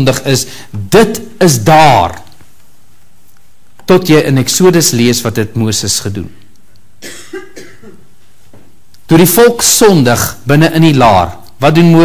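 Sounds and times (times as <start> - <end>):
room hiss: 0.0 - 12.0
faint cough: 7.0 - 8.1.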